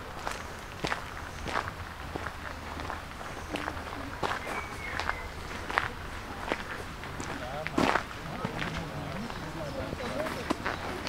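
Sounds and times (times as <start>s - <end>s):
footsteps crunching on gravel: 0.0s - 9.4s, 10.0s - 11.0s.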